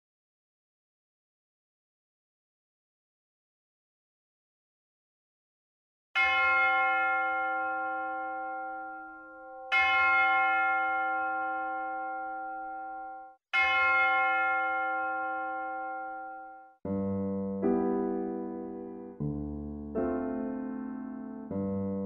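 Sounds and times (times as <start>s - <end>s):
church bell ringing: 6.2s - 16.8s.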